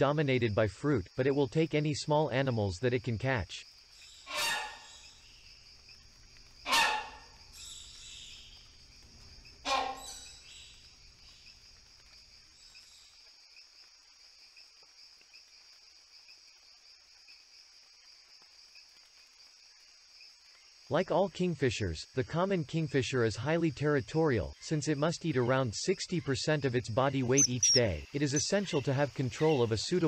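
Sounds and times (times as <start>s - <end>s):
insects droning: 0.0s - 30.0s
hornbill calls: 4.2s - 5.2s, 6.6s - 8.6s, 9.6s - 10.7s, 27.2s - 29.9s.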